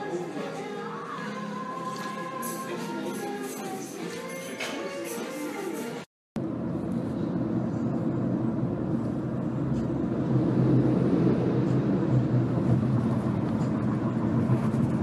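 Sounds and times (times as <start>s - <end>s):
vehicle rumble from inside cabin: 6.4s - 15.0s.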